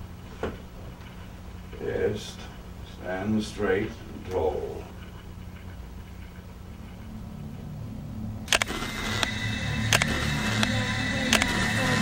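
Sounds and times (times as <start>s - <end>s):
low drone: 4.5s - 12.0s
sustained musical tones: 6.8s - 12.0s
camera shutter clicks: 8.5s - 10.7s, 11.3s - 11.7s.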